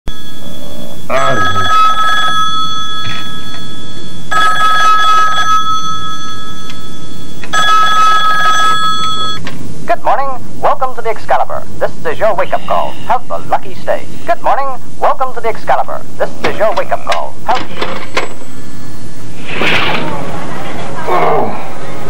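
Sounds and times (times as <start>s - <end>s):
telephone ringing: 0.1s - 9.4s.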